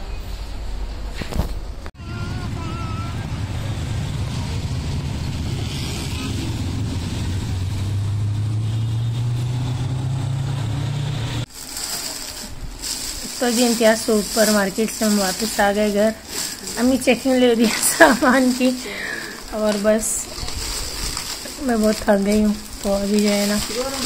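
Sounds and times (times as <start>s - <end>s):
road noise: 0.0s - 24.0s
motor rickshaw engine running: 2.0s - 24.0s.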